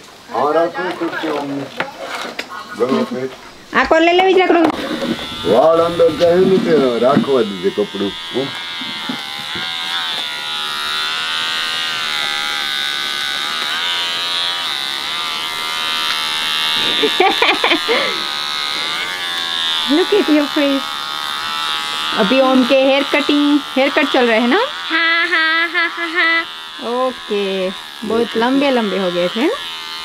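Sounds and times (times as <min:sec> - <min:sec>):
electric hair clippers buzzing: 0:03.8 - 0:30.0.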